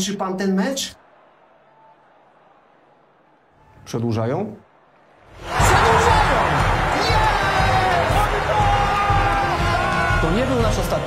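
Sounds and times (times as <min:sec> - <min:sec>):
background music: 0:05.3 - 0:11.0
men shouting in celebration: 0:05.4 - 0:10.4.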